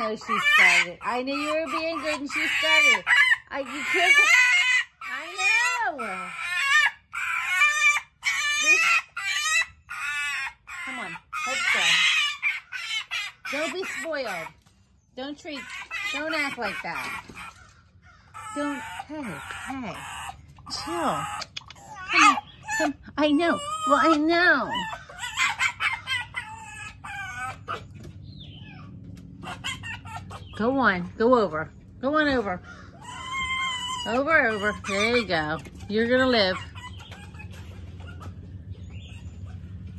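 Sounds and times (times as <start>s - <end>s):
fox whining: 0.0s - 31.2s, 31.8s - 39.9s.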